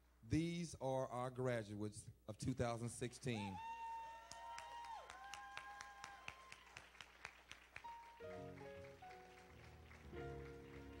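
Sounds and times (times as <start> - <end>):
hand claps: 4.3 - 11.0
faint keyboard chords: 7.8 - 11.0.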